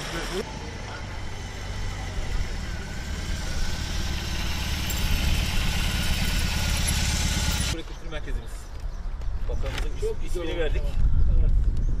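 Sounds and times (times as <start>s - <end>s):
motorcycle engine rumbling: 0.0s - 7.8s.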